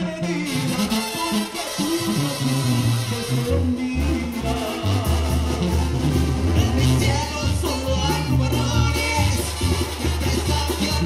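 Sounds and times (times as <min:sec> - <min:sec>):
brass band playing: 0:00.0 - 0:11.0
sousaphone bass notes: 0:00.0 - 0:11.0.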